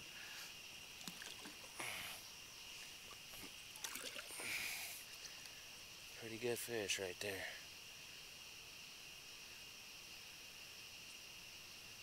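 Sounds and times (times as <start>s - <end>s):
insects chirping: 0.0s - 12.0s
water splashing and dripping: 1.0s - 2.0s, 3.1s - 4.7s.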